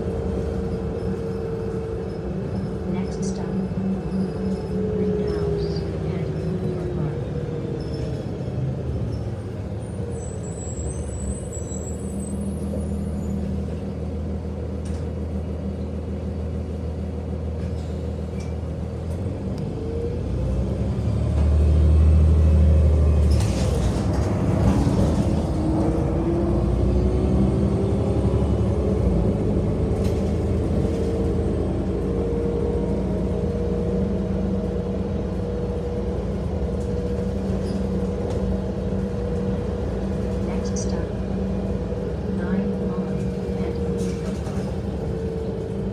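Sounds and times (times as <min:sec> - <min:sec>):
bus engine and road noise: 0:00.0 - 0:45.9
rattles over railway tracks: 0:00.0 - 0:45.9.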